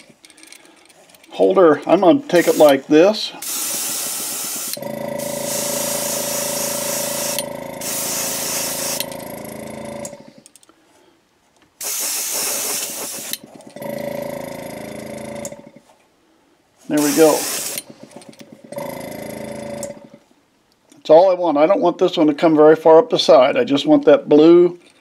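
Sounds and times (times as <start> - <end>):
airbrush spraying hiss: 2.2 - 9.1, 11.8 - 13.4, 16.9 - 17.9
airbrush compressor running: 2.3 - 10.4, 11.8 - 15.8, 16.9 - 20.2.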